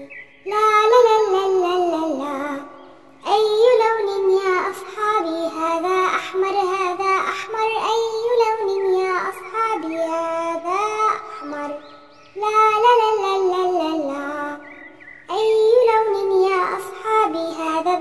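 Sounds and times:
child singing: 0:00.0 - 0:18.0.

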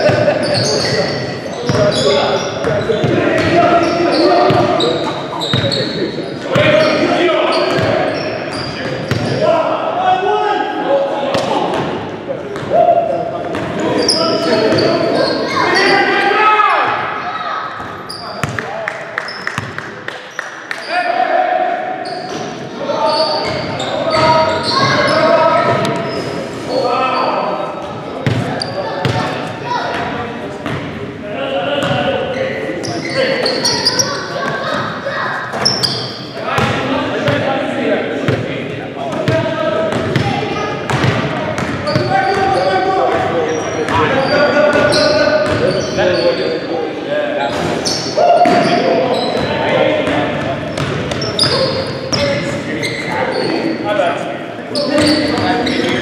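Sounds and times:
players shouting: 0:12.6 - 0:18.4.

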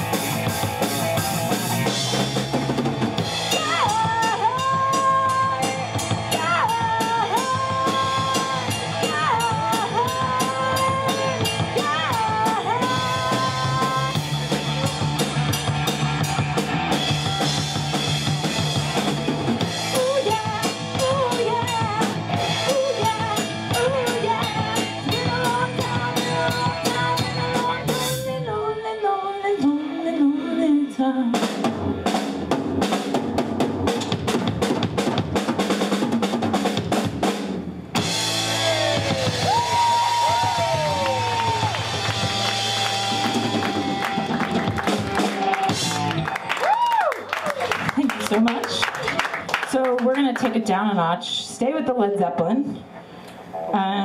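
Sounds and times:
drum kit: 0:00.0 - 0:28.4, 0:31.3 - 0:49.5
bass guitar: 0:00.0 - 0:29.0, 0:36.6 - 0:49.8
electric guitar: 0:00.0 - 0:29.0, 0:38.0 - 0:49.2
female lead vocal: 0:03.5 - 0:14.2, 0:19.9 - 0:31.5.

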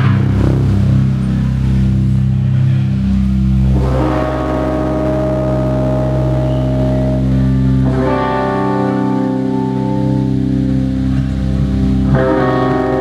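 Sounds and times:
droning electric guitar chords: 0:00.0 - 0:13.0
electric bass: 0:00.0 - 0:13.0.

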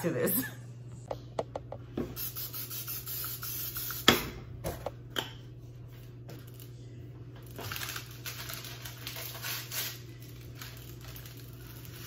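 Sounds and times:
aerosol spray hissing into pan: 0:02.2 - 0:04.1.

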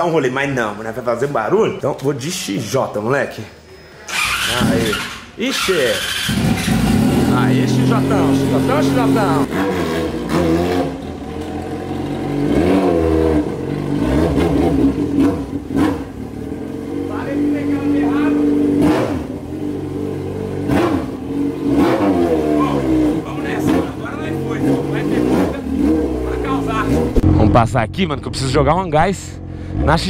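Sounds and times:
motorcycle engine revving: 0:04.0 - 0:30.0.

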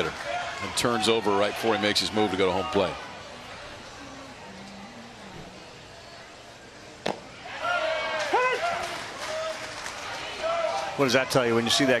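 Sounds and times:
ballpark background: 0:00.0 - 0:12.0
baseball pop: 0:07.0 - 0:07.3.

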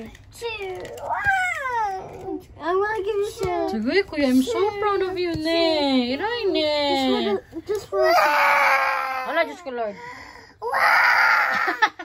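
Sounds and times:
toddler girl wailing: 0:08.0 - 0:09.5, 0:10.6 - 0:11.9.

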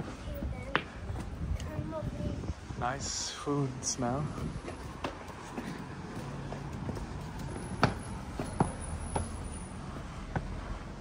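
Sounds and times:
footsteps on stone: 0:04.3 - 0:10.8.

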